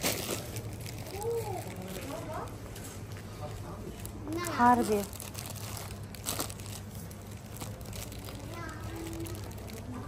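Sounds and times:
low steady hum: 0.0 - 10.0
plastic packaging crinkling: 0.0 - 10.0.

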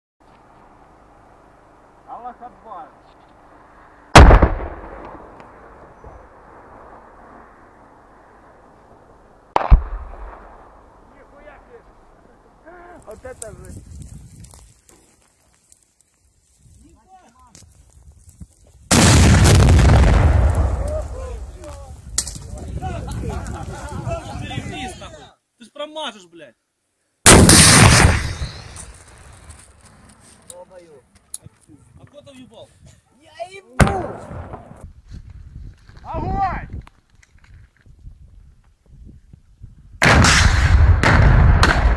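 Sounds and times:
weapon shot blasts: 4.1 - 5.8, 9.5 - 10.8, 27.3 - 28.8, 40.0 - 41.9.

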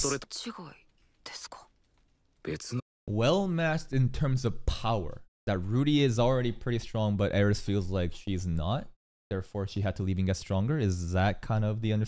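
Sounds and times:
louder voice: 0.0 - 0.2
person whispering: 0.0 - 0.2, 1.3 - 1.7.

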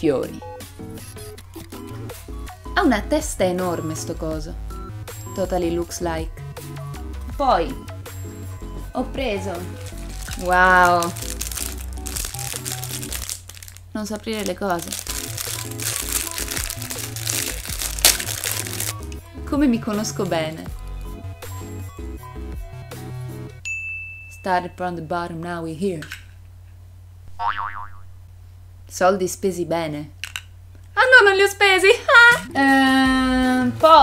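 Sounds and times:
background music: 0.0 - 23.6, 32.4 - 34.0
plastic packaging crinkling: 9.6 - 19.2
cartoon boing: 27.3 - 28.2.

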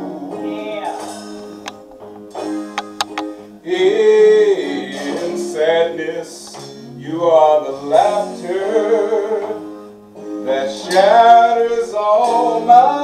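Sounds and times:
man singing slow melody: 0.0 - 1.1, 3.6 - 13.0.

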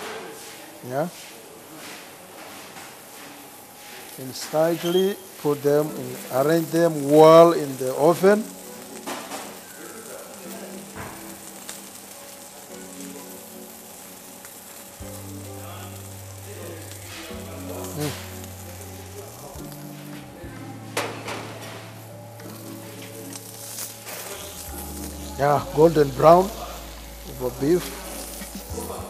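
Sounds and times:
food sizzling on a grill: 0.0 - 29.0.

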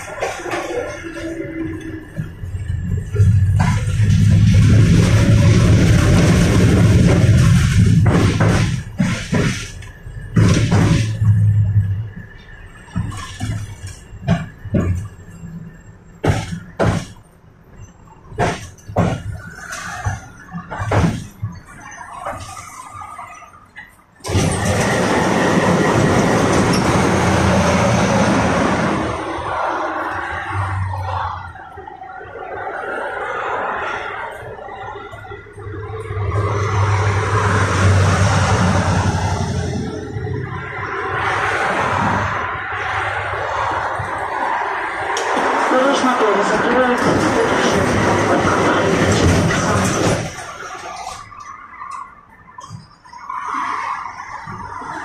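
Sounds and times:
tram wheels clicking over rail joints: 0.0 - 31.5, 32.6 - 53.2
loud running rumble with hum: 2.1 - 17.0.

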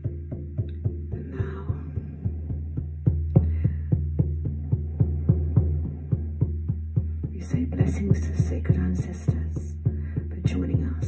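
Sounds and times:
hand drum beating steady rhythm: 0.0 - 11.0
low sustained drone: 0.0 - 11.0.

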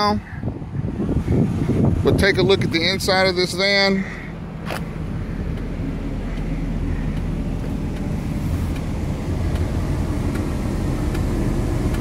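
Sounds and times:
engine idling rumble: 0.0 - 12.0.

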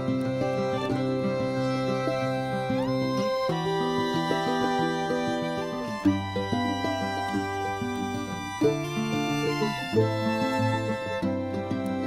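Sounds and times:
instrumental music with held chords: 0.0 - 12.0.

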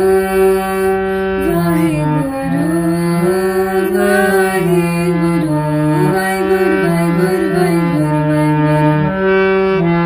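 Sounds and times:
woman singing: 0.0 - 9.1
harmonium melody: 0.0 - 10.0.

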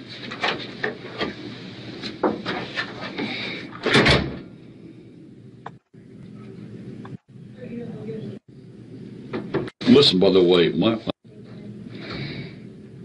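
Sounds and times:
door shutting with a thump: 3.8 - 4.5, 9.3 - 9.7.

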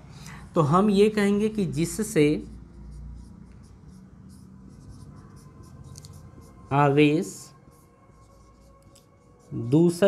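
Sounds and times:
marker pen scratching on whiteboard: 0.7 - 10.0.

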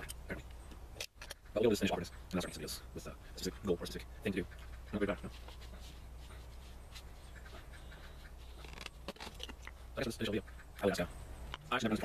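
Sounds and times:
soft breathy panting: 2.7 - 8.6.

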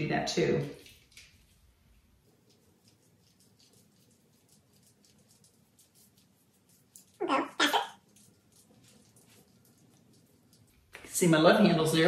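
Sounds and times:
needle roller scratching on skin: 0.9 - 11.1.

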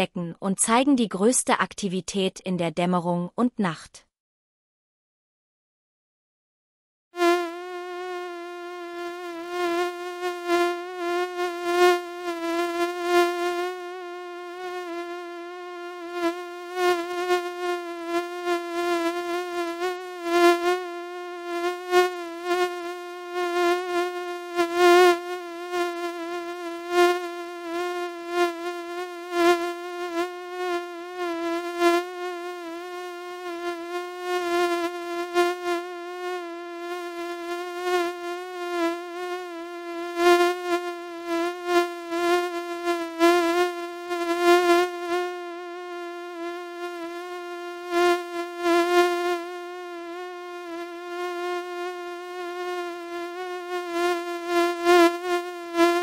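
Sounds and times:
mosquito whining in flight: 7.2 - 56.0.

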